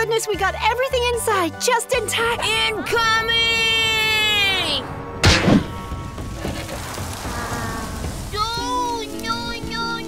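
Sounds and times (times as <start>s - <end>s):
soft background music: 0.0s - 10.0s
steady rain falling: 2.4s - 10.0s.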